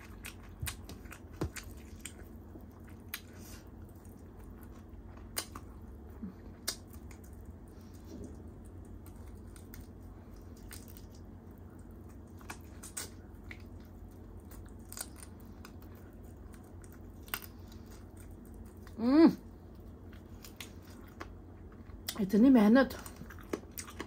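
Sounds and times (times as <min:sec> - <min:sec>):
chewing with lip smacks: 0:00.0 - 0:19.0, 0:19.6 - 0:22.3, 0:22.9 - 0:24.0
steady low hum: 0:00.0 - 0:24.0.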